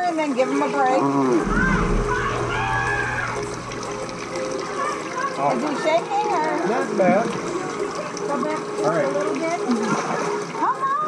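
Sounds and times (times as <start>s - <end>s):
pool water lapping and sloshing: 0.0s - 11.0s.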